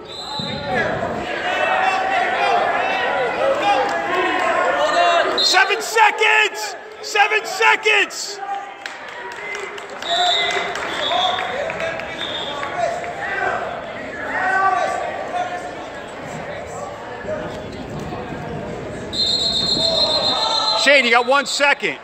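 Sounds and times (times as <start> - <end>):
referee's whistle blasts: 0.0 - 0.9, 5.3 - 6.0, 10.0 - 11.5, 12.2 - 12.7, 19.1 - 21.6
spectators shouting in echoing hall: 0.0 - 16.0, 19.1 - 22.0.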